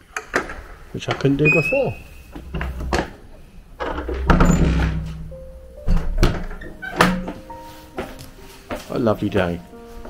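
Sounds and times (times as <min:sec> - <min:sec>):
faint music-like tones: 0:01.0 - 0:10.0
low rumble: 0:02.0 - 0:06.0.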